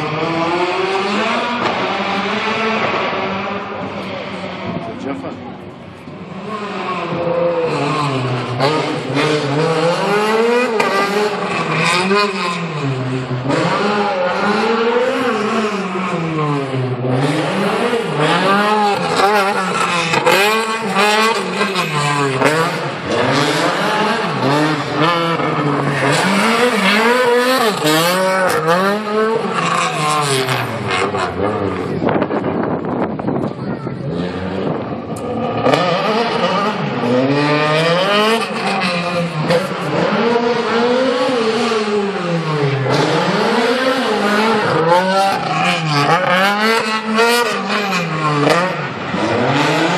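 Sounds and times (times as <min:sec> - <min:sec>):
car engine revving hard: 0:00.0 - 0:05.4, 0:06.2 - 0:32.8, 0:34.0 - 0:49.9.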